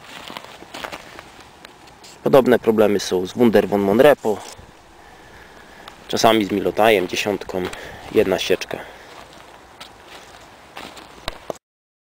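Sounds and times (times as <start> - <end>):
footsteps on thin snow: 0.0 - 11.6.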